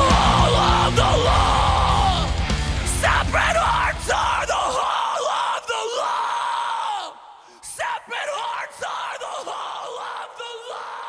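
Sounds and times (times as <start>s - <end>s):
voices yelling and whooping: 0.0s - 2.4s
heavy guitars and bass: 0.0s - 4.8s.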